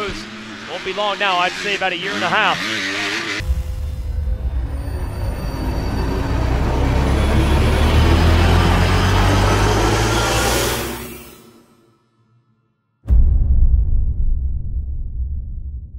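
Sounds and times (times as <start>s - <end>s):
deep bass rumble: 3.4s - 9.8s, 13.1s - 15.9s
rising rush of noise: 3.4s - 11.1s.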